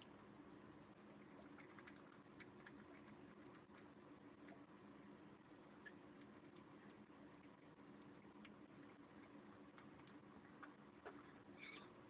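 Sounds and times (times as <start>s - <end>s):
kitten chewing and licking: 0.0s - 12.0s
low steady hum: 0.0s - 12.0s.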